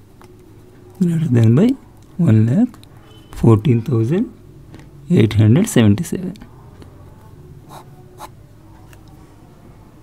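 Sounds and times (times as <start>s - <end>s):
pen scratching on paper: 7.7s - 8.3s.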